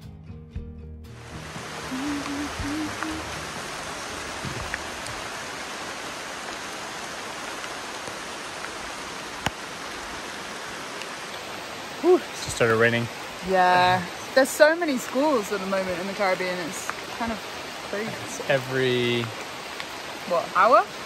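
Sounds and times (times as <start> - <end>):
rain on leaves: 1.2 - 21.0.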